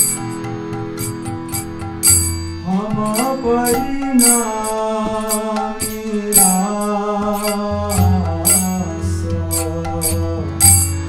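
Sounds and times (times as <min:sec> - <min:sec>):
devotional chanting with music: 0:00.0 - 0:11.0
small metallic cymbal strikes: 0:00.0 - 0:11.0
steady drone: 0:00.0 - 0:11.0.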